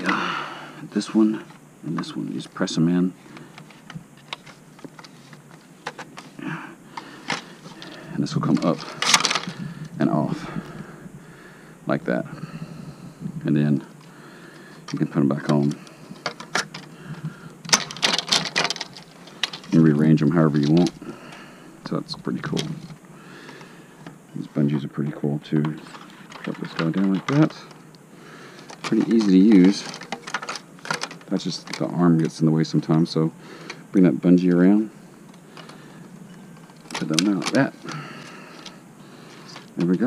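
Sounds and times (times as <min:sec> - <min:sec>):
low steady background hiss: 0:00.0 - 0:40.0
hard plastic clicks and rattles: 0:07.0 - 0:09.9, 0:14.9 - 0:19.8, 0:28.6 - 0:32.4.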